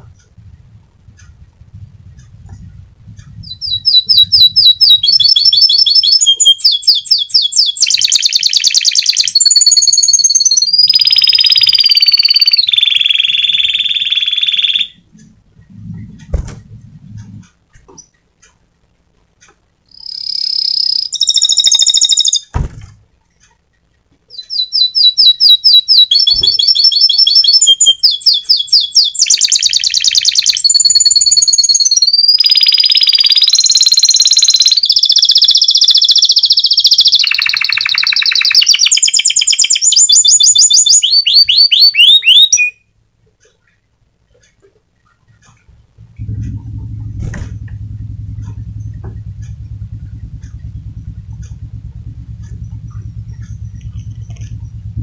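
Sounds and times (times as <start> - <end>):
canary singing: 0.0 - 18.6, 19.5 - 22.5, 24.3 - 42.8.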